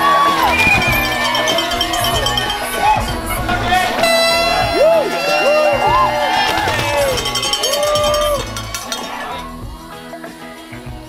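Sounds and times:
cowbells clanging: 0:00.0 - 0:09.6
spectators whooping and cheering: 0:00.0 - 0:09.6.

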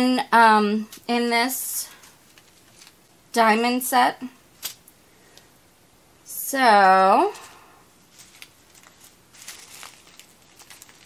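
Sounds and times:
plastic bags crinkling: 0:02.0 - 0:03.1, 0:07.4 - 0:11.0.

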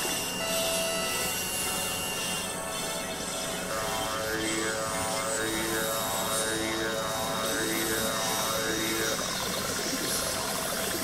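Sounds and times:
noisy synthesizer drone: 0:00.0 - 0:11.0.

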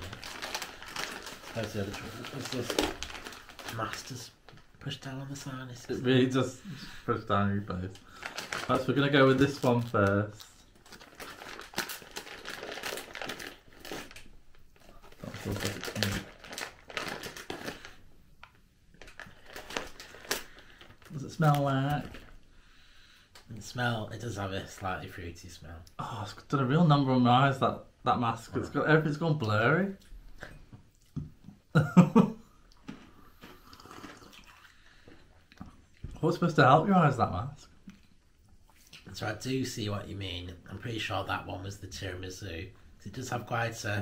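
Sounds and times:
plastic sweet bag crinkling: 0:00.0 - 0:06.4, 0:07.7 - 0:22.4
faint low room noise: 0:00.0 - 0:44.0.

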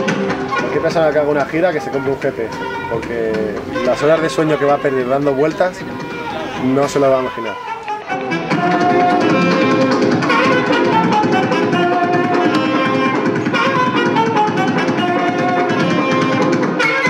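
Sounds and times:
saxophone: 0:00.0 - 0:17.0
swing jazz band playing: 0:00.0 - 0:17.0
trumpet: 0:00.0 - 0:17.0.

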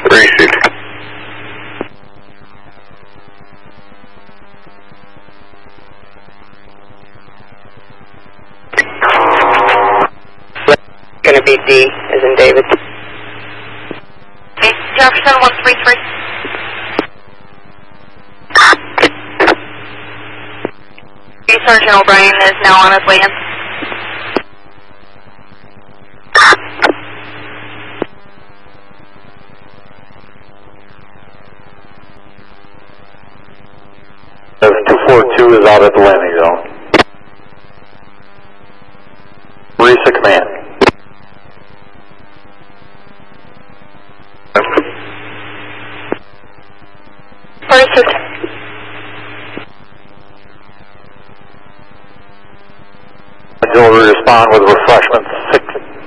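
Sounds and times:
radio squelch click: 0:00.0 - 0:00.8, 0:01.4 - 0:02.0, 0:08.7 - 0:10.8, 0:11.5 - 0:17.2, 0:18.6 - 0:24.5, 0:26.4 - 0:28.2, 0:36.6 - 0:37.2, 0:40.0 - 0:41.0, 0:44.5 - 0:46.3, 0:47.5 - 0:49.8, 0:54.8 - 0:56.0
voice over radio: 0:00.0 - 0:00.8, 0:08.8 - 0:13.0, 0:14.6 - 0:17.0, 0:21.5 - 0:24.0, 0:26.4 - 0:26.9, 0:34.6 - 0:36.9, 0:39.8 - 0:40.9, 0:44.6 - 0:45.1, 0:47.6 - 0:48.6, 0:53.6 - 0:56.0
loud radio burst: 0:00.0 - 0:01.8, 0:08.8 - 0:14.0, 0:14.6 - 0:17.1, 0:18.5 - 0:20.8, 0:21.5 - 0:24.4, 0:26.3 - 0:28.0, 0:34.6 - 0:37.0, 0:39.8 - 0:40.9, 0:44.5 - 0:46.2, 0:47.6 - 0:49.7, 0:53.6 - 0:56.0
radio carrier low hum: 0:00.0 - 0:56.0
radio static hiss: 0:00.0 - 0:56.0.

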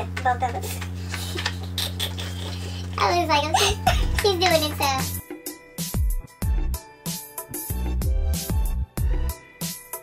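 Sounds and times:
steady low hum: 0:00.0 - 0:05.4
paper rustling and flapping: 0:00.1 - 0:03.0.

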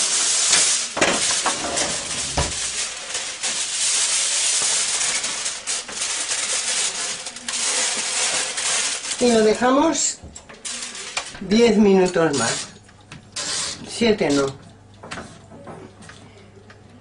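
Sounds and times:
aluminium foil crinkling: 0:00.0 - 0:14.7.

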